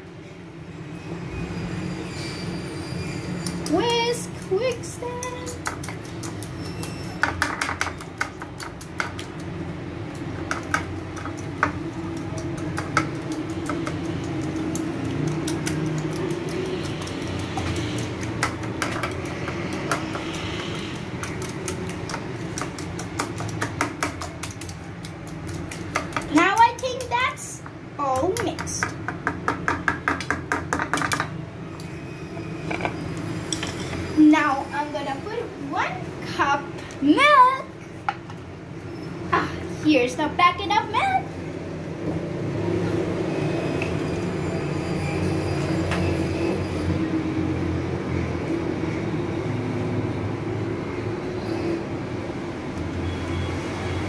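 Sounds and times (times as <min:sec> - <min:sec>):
child's voice: 0:03.7 - 0:05.7, 0:26.3 - 0:28.9, 0:34.2 - 0:37.8, 0:39.4 - 0:41.3
wire whisk clicking in a bowl: 0:10.5 - 0:20.0.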